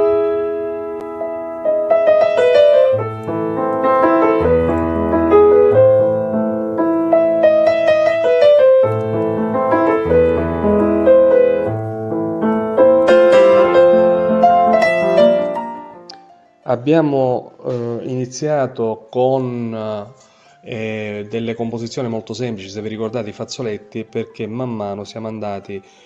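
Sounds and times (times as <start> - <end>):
slow piano music: 0.0 - 18.2, 19.4 - 26.0.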